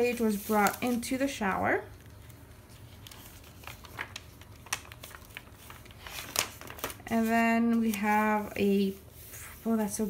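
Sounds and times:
paper page rustling: 0.0 - 10.0.

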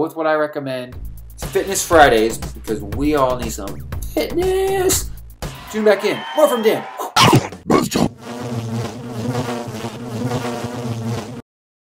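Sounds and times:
cartoon housefly buzzing: 7.1 - 11.4.

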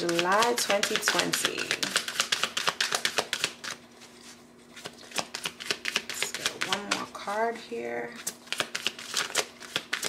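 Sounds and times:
cards being shuffled: 0.0 - 7.1, 8.2 - 10.0.

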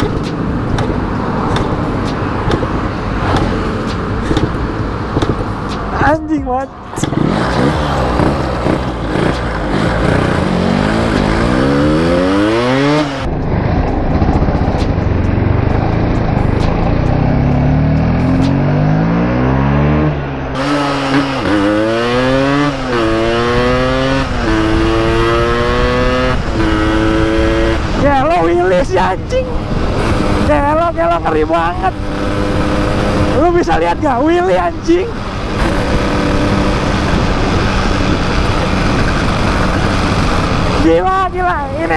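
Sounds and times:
motorcycle engine accelerating: 0.0 - 41.9.

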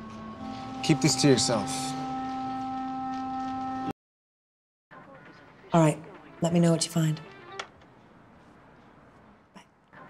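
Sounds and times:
sustained chord of background music: 0.0 - 3.9.

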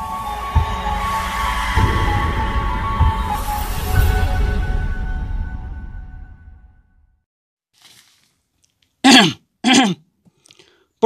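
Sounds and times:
person's short vocal sounds: 9.0 - 10.1.

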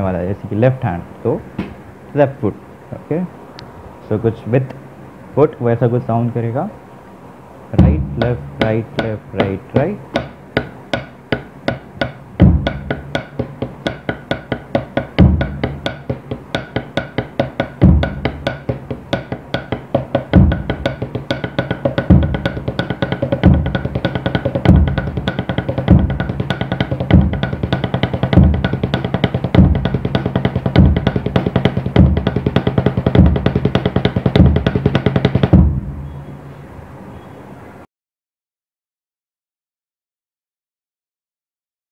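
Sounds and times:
kick drum thumping: 7.8 - 36.1
drumsticks on practice pad: 7.8 - 36.5.

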